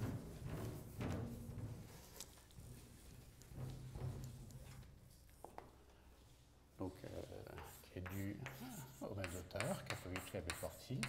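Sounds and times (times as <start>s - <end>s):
man speaking softly: 6.8s - 11.0s
chalk tapping and scraping on blackboard: 7.0s - 11.0s.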